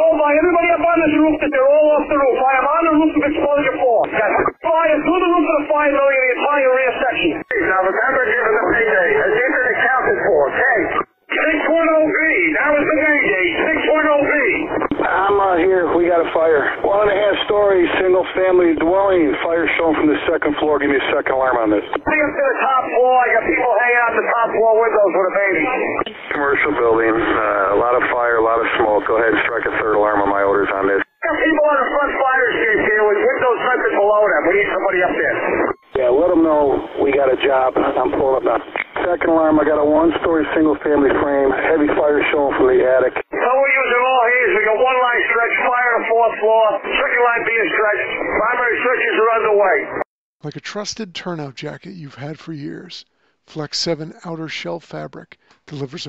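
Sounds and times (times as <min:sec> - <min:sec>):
radio-filtered voices: 0:00.0 - 0:56.0.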